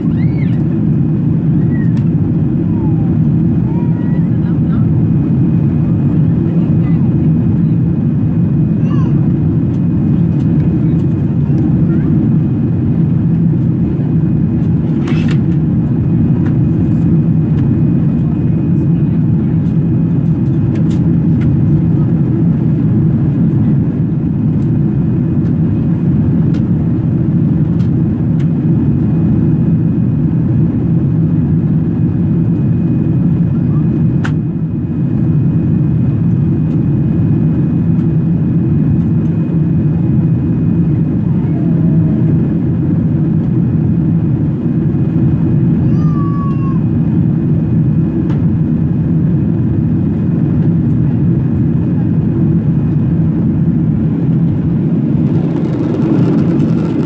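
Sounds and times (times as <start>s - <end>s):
engine and airflow rumble: 0.0s - 57.0s.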